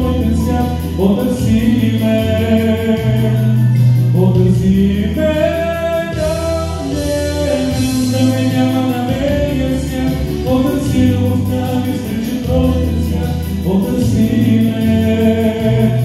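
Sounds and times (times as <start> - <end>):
man singing into a microphone: 0.0 - 16.0
pop backing track: 0.0 - 16.0.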